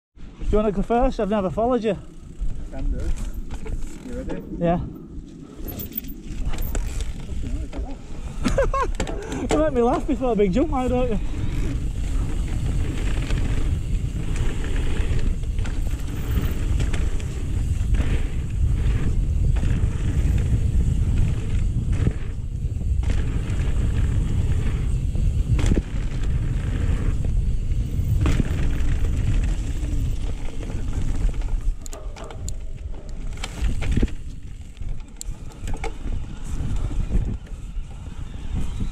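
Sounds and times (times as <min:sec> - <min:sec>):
wind buffeting microphone: 0:00.3 - 0:38.9
bike knocks and rattles: 0:01.7 - 0:04.5, 0:05.7 - 0:38.9
tyres rumbling over dirt: 0:05.5 - 0:38.1.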